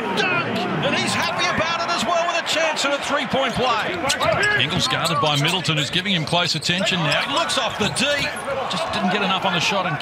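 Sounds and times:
arena crowd noise: 0.0s - 10.0s
man commentating: 0.0s - 10.0s.

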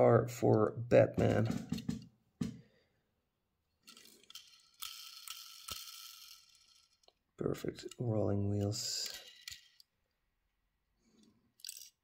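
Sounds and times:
tiny toy wheels whirring: 3.9s - 7.2s.

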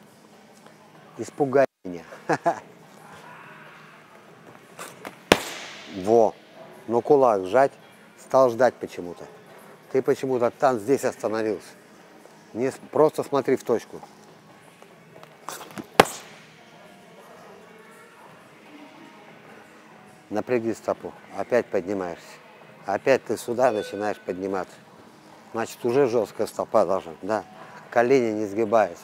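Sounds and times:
feet scuffing on gym floor: 4.8s - 6.0s, 15.5s - 16.5s
boxing glove punching focus mitt: 5.1s - 6.1s, 15.8s - 16.5s.

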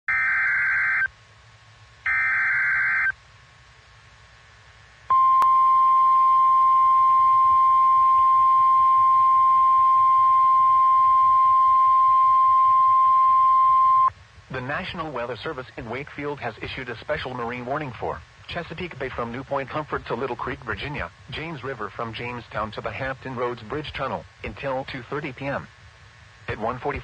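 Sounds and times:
steady warning alarm tone: 0.0s - 1.1s, 2.1s - 3.2s, 5.1s - 14.1s
digital data bursts: 2.1s - 3.1s.

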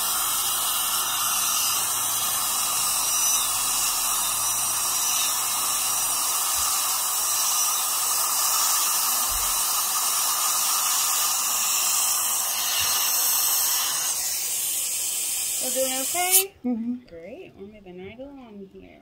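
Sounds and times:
dental drill high hiss: 0.0s - 16.5s.

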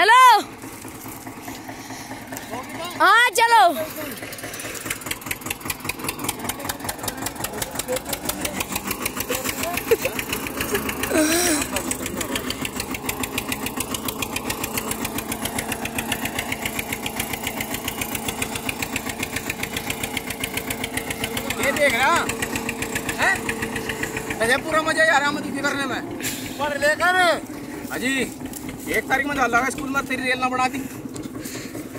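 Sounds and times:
tractor engine knocking: 0.0s - 31.9s
person calling out: 10.8s - 12.0s.

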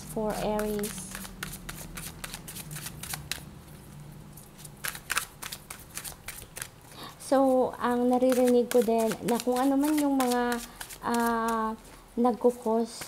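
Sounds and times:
cards being shuffled: 0.3s - 3.5s, 4.4s - 6.8s, 8.1s - 11.8s.

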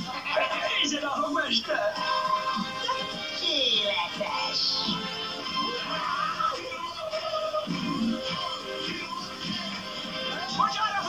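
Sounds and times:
music from television speakers: 0.0s - 11.0s.

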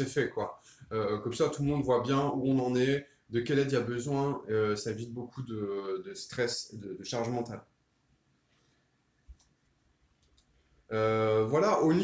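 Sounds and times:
man speaking: 0.0s - 7.6s, 10.9s - 12.0s.

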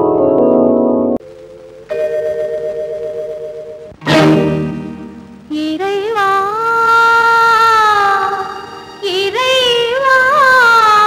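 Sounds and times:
woman singing long note: 5.5s - 11.0s.

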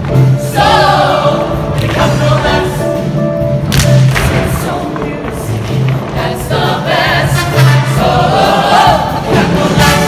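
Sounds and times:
choir singing upbeat song: 0.1s - 3.4s, 4.2s - 10.0s.

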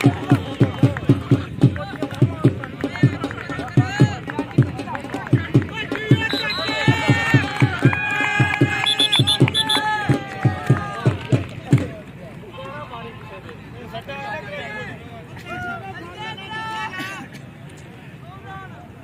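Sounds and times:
drum beating steady rhythm: 0.0s - 12.1s.

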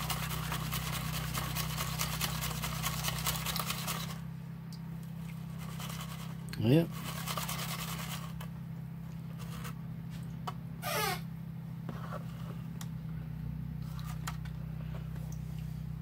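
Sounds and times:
steady low hum: 0.0s - 16.0s
gravel scraping in a pan: 5.4s - 8.5s, 9.3s - 9.8s
brief squeak: 10.8s - 11.3s.

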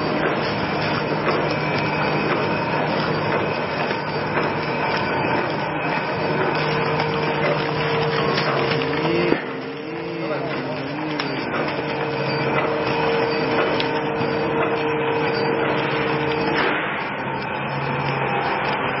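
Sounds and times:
packaging machine humming: 0.0s - 19.0s.

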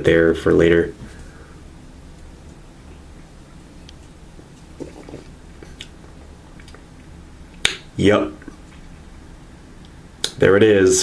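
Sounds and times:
low steady hum: 0.0s - 11.0s
swallowing clicks: 5.6s - 7.8s.

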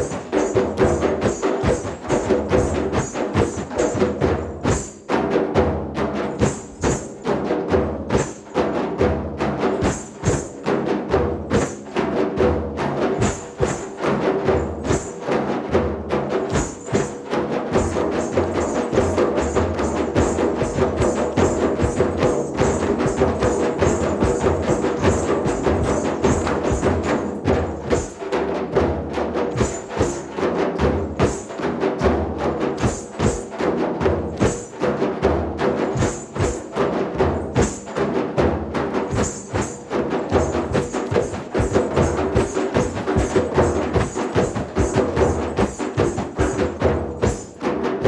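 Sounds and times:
hand drum ensemble playing: 0.0s - 48.0s.

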